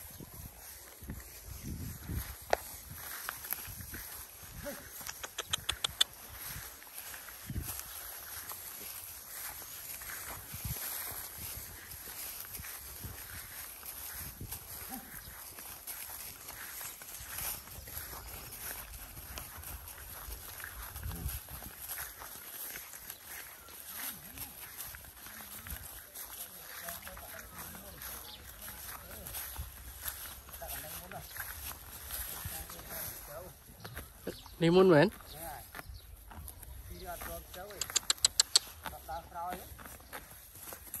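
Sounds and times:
footsteps on dry grass: 0.0 - 41.0.

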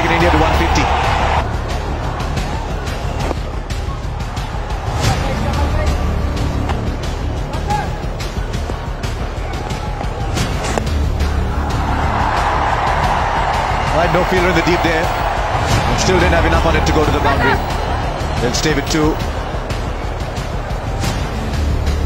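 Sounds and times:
background music: 0.0 - 22.0
stadium crowd noise: 0.0 - 22.0.

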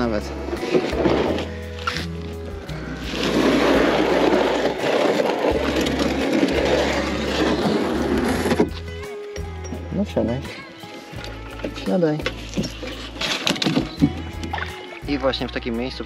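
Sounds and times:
kayak hull scraping over gravel: 0.0 - 9.0, 12.4 - 15.0
background music: 0.0 - 16.0.

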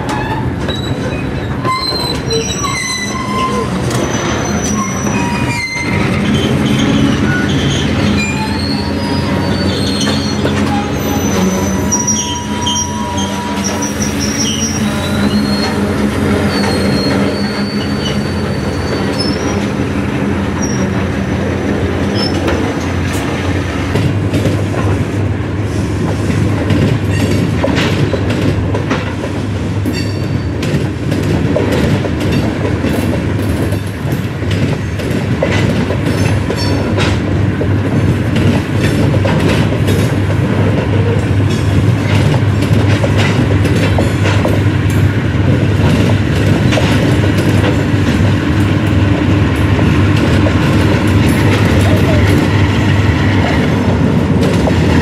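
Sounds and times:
train wheels rumbling on rail: 0.0 - 55.0
high wheel squeals: 0.2 - 19.7
wheels clicking over rail joints: 26.1 - 52.6.

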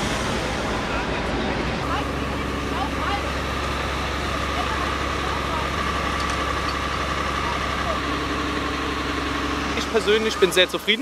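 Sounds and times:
fire engine pump motor droning: 0.0 - 11.0.

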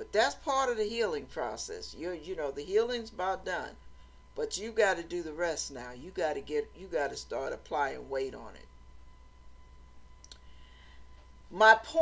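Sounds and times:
faint electrical hum: 0.0 - 12.0.

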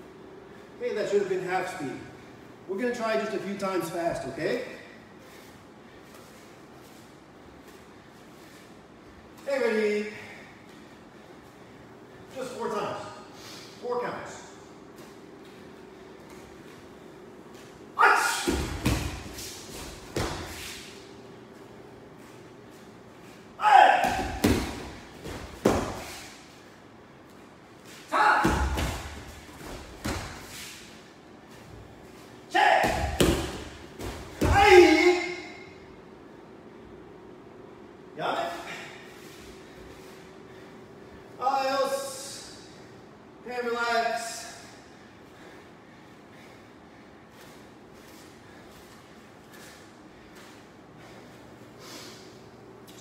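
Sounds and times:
person shouting forcefully: 18.0 - 19.1, 23.6 - 24.8, 28.1 - 29.1, 32.5 - 33.6, 34.4 - 35.7
bare feet stamping on mats: 18.3 - 20.8, 24.0 - 26.3, 28.4 - 30.6, 32.7 - 34.8.

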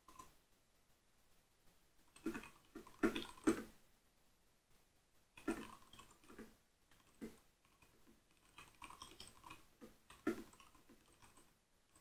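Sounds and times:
soft keyboard typing: 0.0 - 0.4, 5.4 - 12.0.

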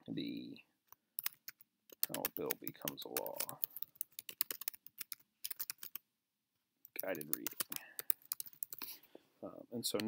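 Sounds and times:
computer keyboard typing: 1.2 - 6.0, 6.8 - 8.9.

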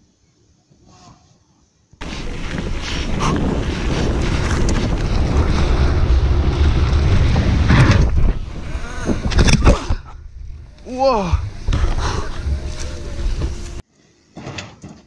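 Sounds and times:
low riding rumble: 2.0 - 13.8
wind buffeting microphone: 2.0 - 13.8.

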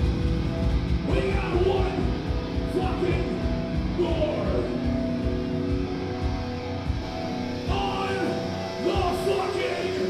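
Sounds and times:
metal band playing: 0.0 - 10.0
ringing electric guitars: 0.0 - 10.0.

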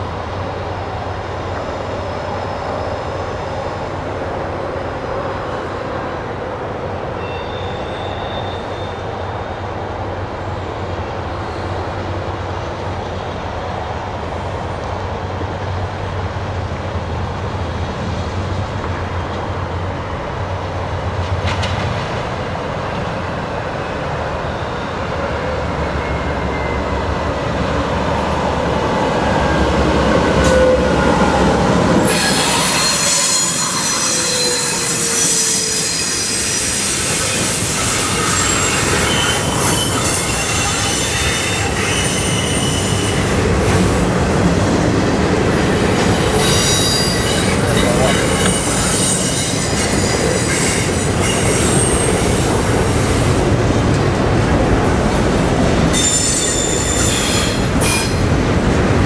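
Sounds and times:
diesel locomotives passing: 0.0 - 59.0
train wheels rumbling on rail: 0.0 - 59.0
high-pitched wheel squeal: 7.2 - 9.0, 32.0 - 43.4, 55.9 - 58.2.

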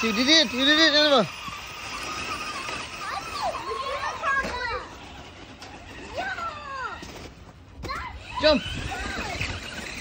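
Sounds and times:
children calling out and squealing: 0.0 - 10.0
steady background noise: 0.0 - 10.0.

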